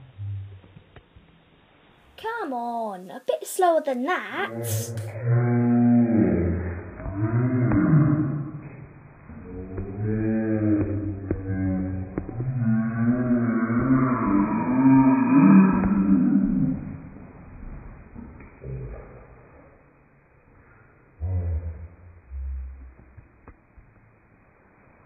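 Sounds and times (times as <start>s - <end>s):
person's voice sliding in pitch: 4.3s - 5.4s.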